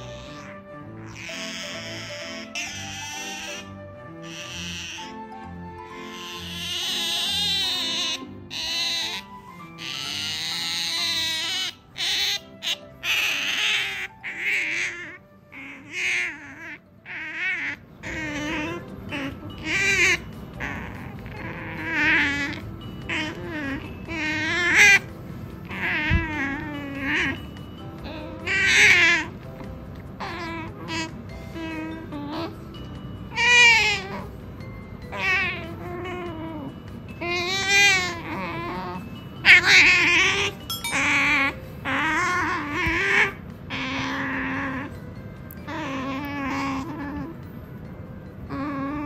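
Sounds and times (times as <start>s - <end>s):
otter whining calls: 0.0s - 47.6s.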